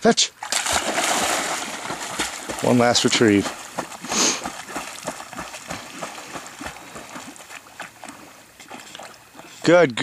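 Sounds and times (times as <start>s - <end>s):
dog paddling splashes in water: 0.4s - 9.6s.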